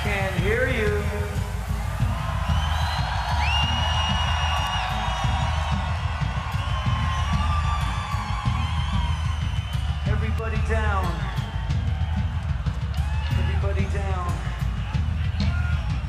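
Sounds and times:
heavy fast drums: 0:00.0 - 0:16.0.

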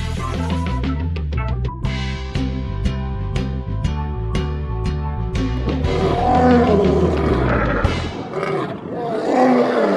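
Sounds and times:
animal roar: 0:05.7 - 0:09.9.

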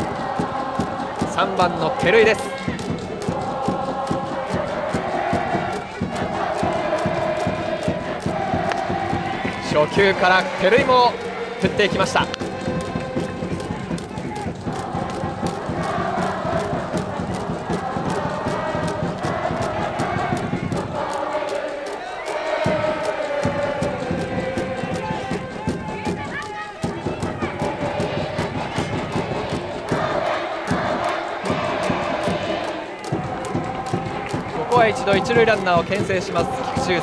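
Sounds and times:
crowd chanting: 0:00.0 - 0:37.0
drum beats: 0:00.0 - 0:37.0.

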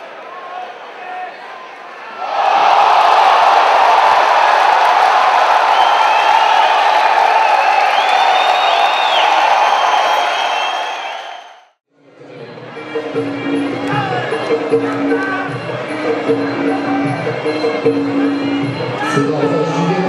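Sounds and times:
crowd cheering and shouting: 0:00.0 - 0:11.7, 0:12.5 - 0:20.0.

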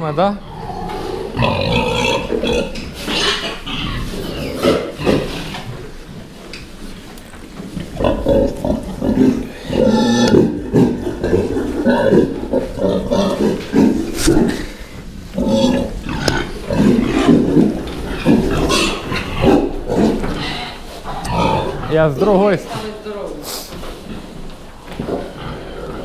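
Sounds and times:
pigs grunting: 0:00.0 - 0:06.1, 0:07.7 - 0:22.8, 0:25.0 - 0:26.0.

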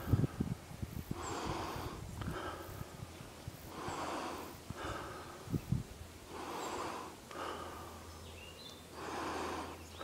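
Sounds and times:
person breathing heavily: 0:00.0 - 0:10.0.

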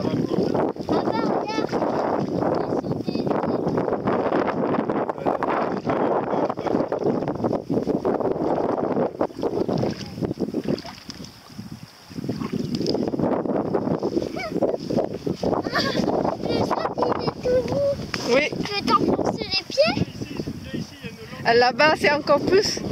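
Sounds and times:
wind buffeting microphone: 0:00.0 - 0:22.9.

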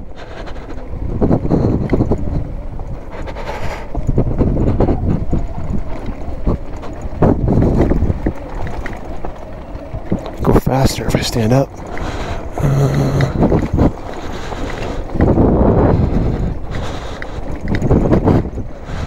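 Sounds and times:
low rumble of tyres on gravel: 0:00.0 - 0:19.0
wind noise on microphone: 0:00.0 - 0:19.0
bike knocking over stones: 0:03.8 - 0:10.6.

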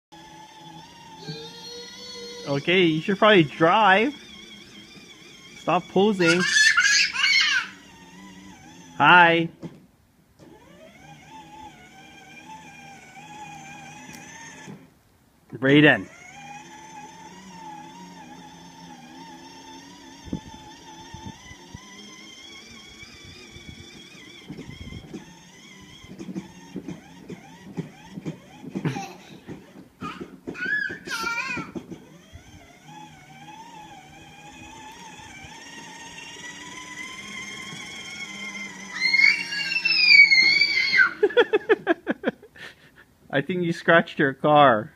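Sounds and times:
toy car electric motor whining: 0:00.1 - 0:09.4, 0:10.4 - 0:14.9, 0:15.7 - 0:42.0
child's high vocal sounds: 0:01.2 - 0:02.6, 0:06.2 - 0:07.8, 0:30.0 - 0:31.8, 0:38.9 - 0:41.3
voices: 0:05.6 - 0:07.9.

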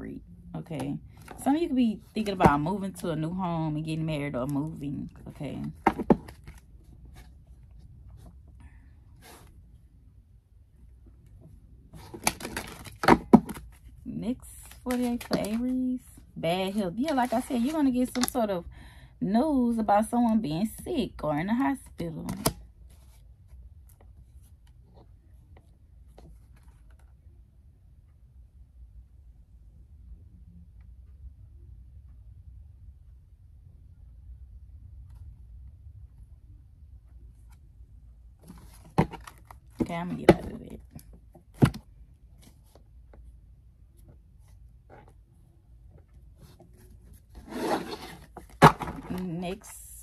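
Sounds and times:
low steady hum: 0:00.0 - 0:50.0
cards rustling: 0:12.0 - 0:13.9, 0:14.6 - 0:15.7, 0:17.0 - 0:18.4.

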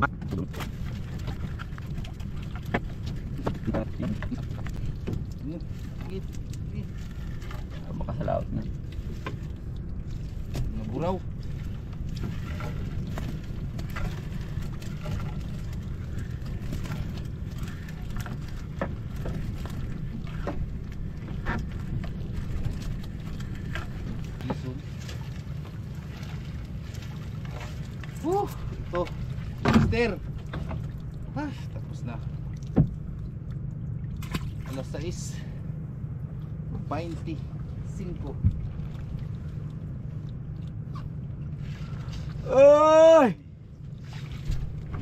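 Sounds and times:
net hauled into boat: 0:00.0 - 0:35.6
low rumble: 0:00.0 - 0:45.0.

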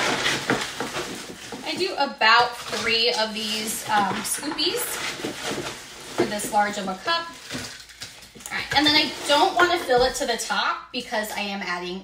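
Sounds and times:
ice pellets clicking and crackling: 0:05.5 - 0:09.6.

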